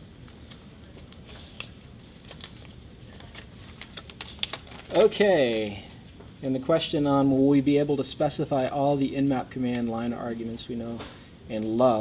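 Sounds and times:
paper slips crackling: 0:00.2 - 0:05.3.

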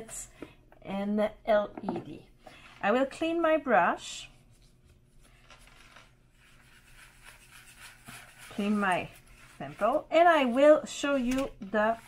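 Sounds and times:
soft rubbing of brush: 0:04.3 - 0:12.0.

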